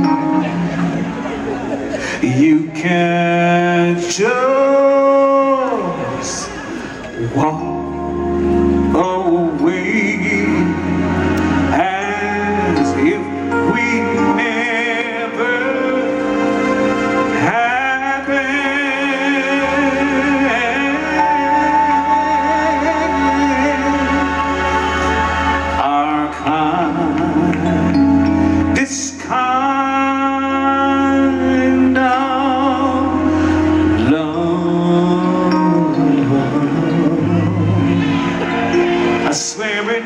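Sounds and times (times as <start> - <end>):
slow soul ballad: 0.0 - 40.0
sustained keyboard chords: 0.0 - 40.0
man singing into a microphone: 2.0 - 40.0.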